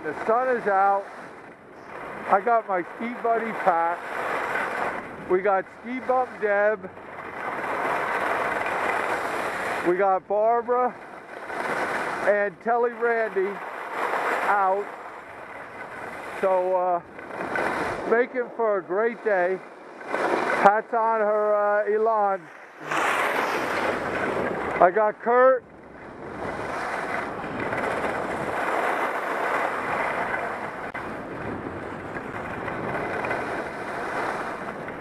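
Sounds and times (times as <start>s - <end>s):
man speaking: 0.0s - 1.1s, 2.3s - 4.0s, 5.3s - 6.9s, 9.8s - 11.0s, 12.2s - 13.6s, 14.4s - 14.9s, 16.4s - 17.1s, 18.0s - 19.7s, 20.6s - 23.0s, 24.8s - 25.6s
wind rushing over microphone: 0.0s - 35.0s
skis hissing over snow: 22.4s - 24.3s.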